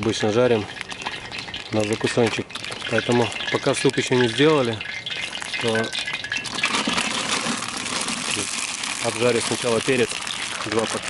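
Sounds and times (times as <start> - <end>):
hot oil hissing and crackling: 0.0 - 11.0.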